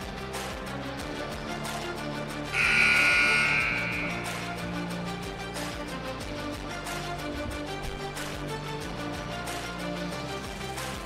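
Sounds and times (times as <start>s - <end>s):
background music: 0.0s - 11.0s
scoreboard buzzer: 2.6s - 4.9s.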